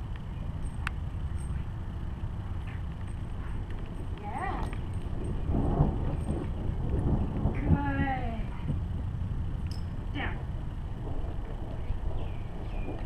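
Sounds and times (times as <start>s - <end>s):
wind rumble on microphone: 0.0s - 13.0s.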